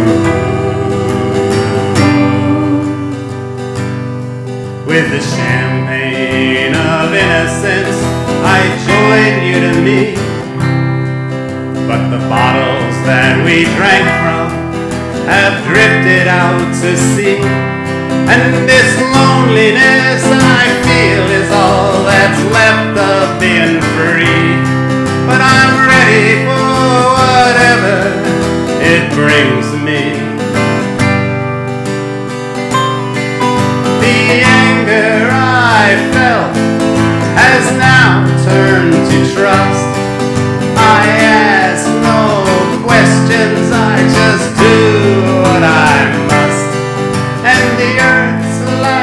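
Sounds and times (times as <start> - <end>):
electric guitar: 0.0 - 49.0
harmonica with bending notes: 0.0 - 49.0
strummed acoustic guitar: 0.0 - 49.0.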